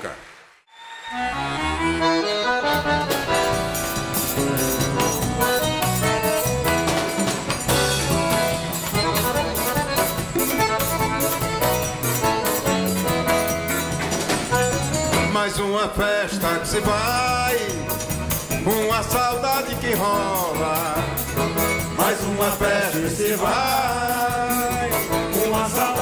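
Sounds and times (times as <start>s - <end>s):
piano accordion: 1.2s - 15.4s, 16.8s - 26.0s
bass: 1.2s - 26.0s
drum kit beat: 2.6s - 15.4s, 16.4s - 26.0s.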